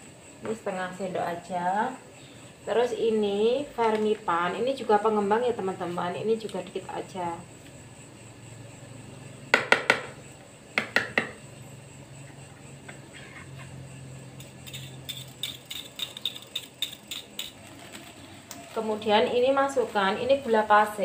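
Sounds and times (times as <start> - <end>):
metal spoon clinking on plastic bowl: 14.4 - 17.6.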